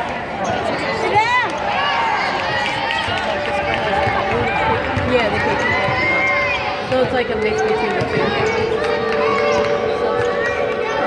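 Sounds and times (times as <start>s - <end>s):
arena crowd voices: 0.0s - 11.0s
shoes squeaking on hardwood court: 5.4s - 10.4s.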